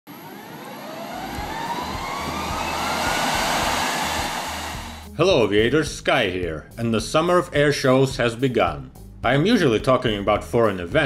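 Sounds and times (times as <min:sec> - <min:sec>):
jet engine noise: 0:00.1 - 0:05.1
turbine whine rising in pitch: 0:00.1 - 0:05.1.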